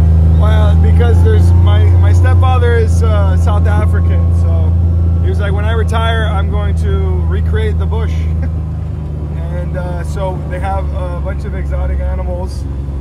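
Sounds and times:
utility vehicle engine drone: 0.0 - 13.0.

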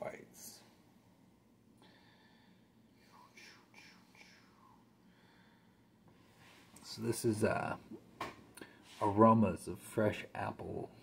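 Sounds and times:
man whispering: 3.0 - 4.9.

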